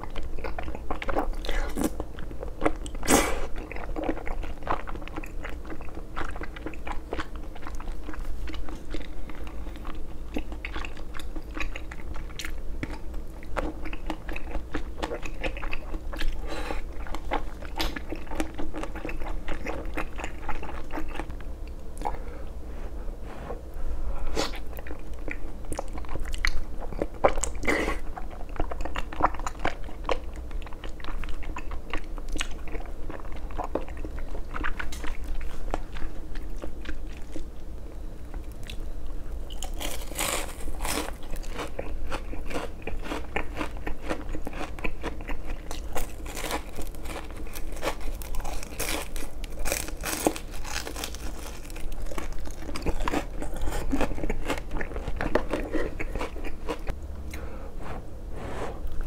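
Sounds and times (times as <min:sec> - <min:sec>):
chewing noodles: 0:00.0 - 0:21.3, 0:39.5 - 0:57.4
crisp crunching of fried batter: 0:39.5 - 0:56.9.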